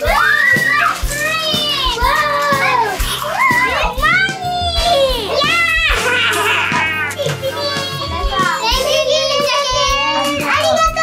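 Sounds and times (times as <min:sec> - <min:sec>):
background music: 0:00.0 - 0:11.0
children shrieking and shouting: 0:00.0 - 0:11.0.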